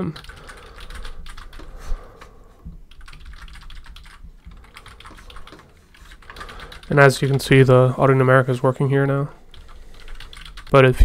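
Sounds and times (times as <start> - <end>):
computer keyboard typing: 0.0 - 7.7, 9.5 - 10.9.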